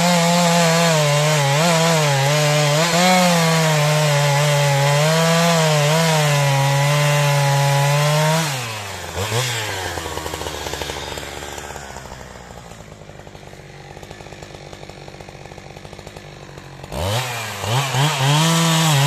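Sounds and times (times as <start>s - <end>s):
chainsaw idling and revving: 0.0s - 19.0s.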